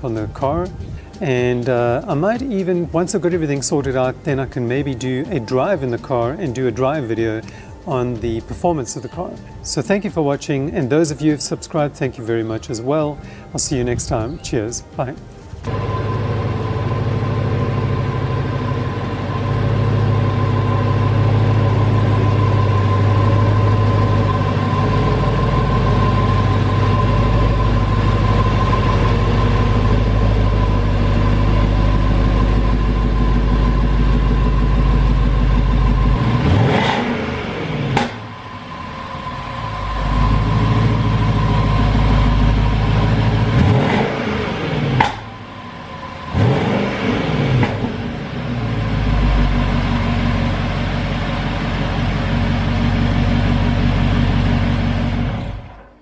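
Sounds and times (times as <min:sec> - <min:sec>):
car engine idling and revving: 0:15.6 - 0:55.9.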